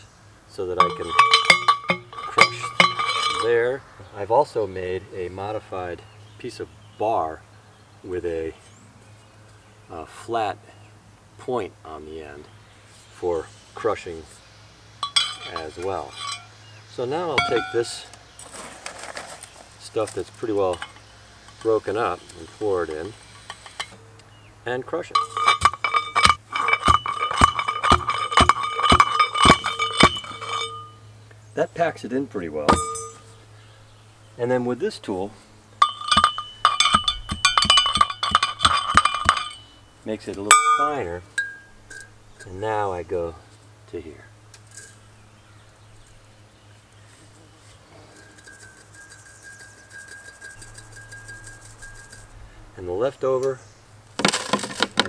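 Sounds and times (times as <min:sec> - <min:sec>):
metal pipe ringing: 0:00.6 - 0:03.8, 0:15.0 - 0:16.6, 0:17.2 - 0:18.2, 0:20.6 - 0:21.0, 0:24.9 - 0:31.1, 0:32.7 - 0:33.4, 0:35.8 - 0:42.7, 0:48.2 - 0:52.3
metal bar pounding shells in pipe: 0:00.7 - 0:03.6, 0:15.0 - 0:16.5, 0:17.3 - 0:18.1, 0:25.0 - 0:31.0, 0:32.7 - 0:33.3, 0:35.8 - 0:39.8, 0:40.4 - 0:42.1
metal sieve rattling: 0:00.8 - 0:03.6, 0:25.0 - 0:31.0, 0:35.8 - 0:39.7.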